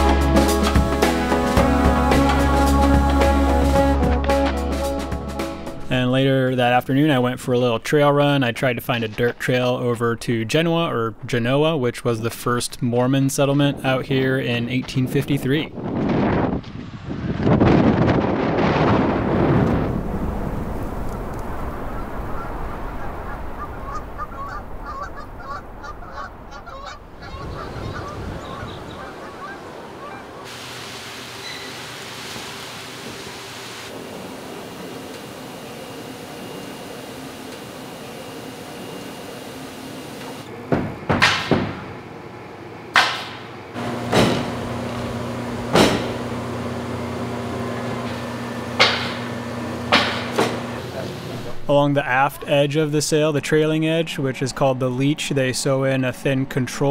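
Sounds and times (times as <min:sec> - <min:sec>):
steady indoor hum: 0:28.0 - 0:55.2
sharp knocks: 0:40.7 - 0:42.0, 0:43.0 - 0:43.5, 0:44.1 - 0:44.6, 0:45.7 - 0:46.3, 0:48.8 - 0:50.7.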